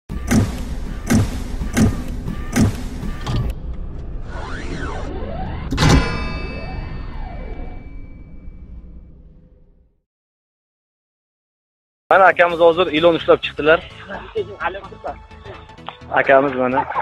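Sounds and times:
heavy hits: 0.1s - 9.8s
rising and falling sweeps: 2.6s - 9.8s
big ringing impact: 5.4s - 9.9s.

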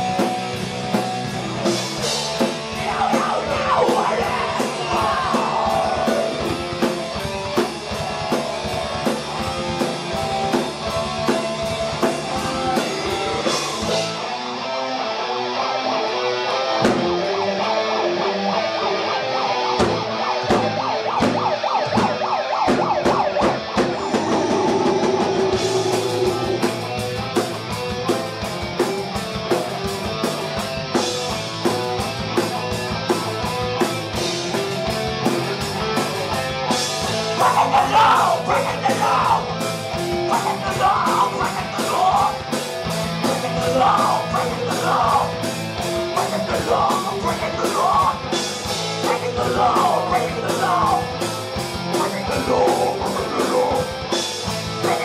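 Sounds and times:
drums with quick hits: 0.0s - 14.2s, 19.8s - 55.0s
heavy metal band playing: 0.0s - 55.0s.

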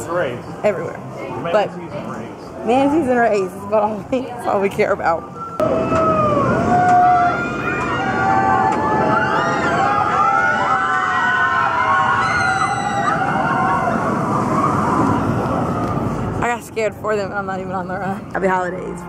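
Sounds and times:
riders screaming: 5.6s - 15.7s
roller coaster rumbling roar: 5.6s - 16.6s.

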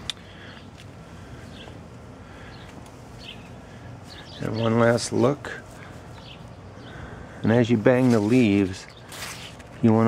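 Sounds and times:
low garden ambience: 0.0s - 10.0s.

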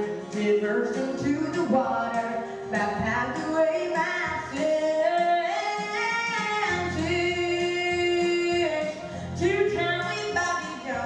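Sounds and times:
girl singing into microphone: 0.0s - 11.0s.

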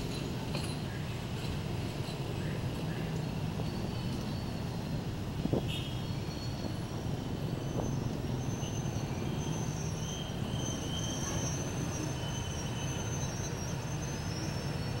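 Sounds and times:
high squeals from train: 0.0s - 15.0s
train wheels rumbling on rails: 0.0s - 15.0s.

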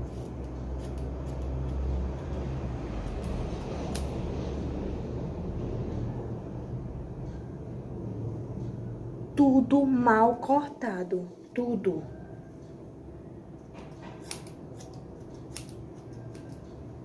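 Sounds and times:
scissors cutting hair: 0.0s - 4.8s, 13.8s - 17.0s
steady low rumble: 0.0s - 13.8s.

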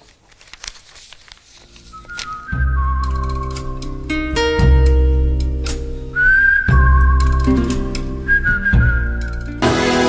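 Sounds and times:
tv theme music with whistle lead: 1.9s - 4.9s, 6.1s - 10.0s.

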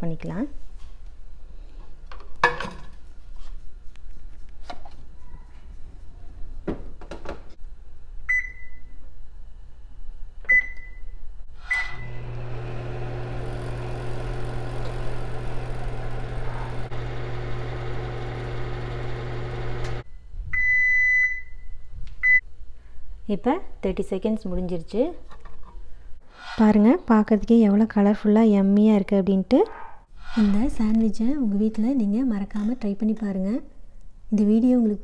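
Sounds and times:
microwave keypad beeps: 8.3s - 8.8s
microwave beep: 8.3s - 8.9s, 10.5s - 11.1s, 11.7s - 13.0s, 17.0s - 21.6s
microwave oven humming: 11.7s - 20.0s.

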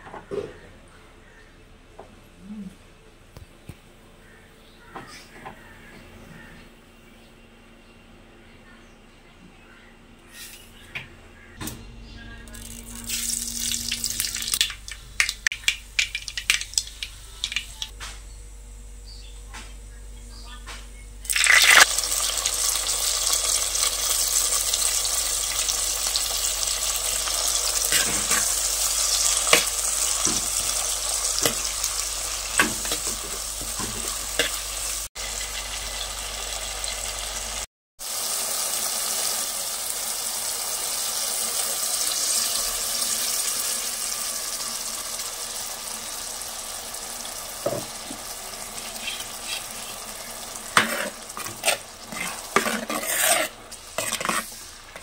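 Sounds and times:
vegetables sizzling in oil: 12.5s - 17.9s, 21.3s - 55.0s
metal spoon scraping pot: 48.8s - 50.0s, 50.7s - 55.0s.

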